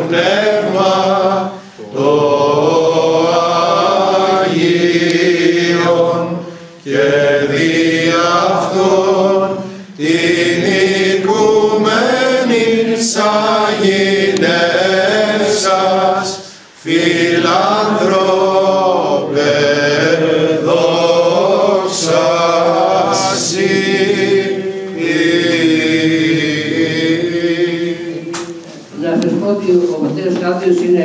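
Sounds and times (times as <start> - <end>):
men chanting a hymn: 0.0 - 29.0.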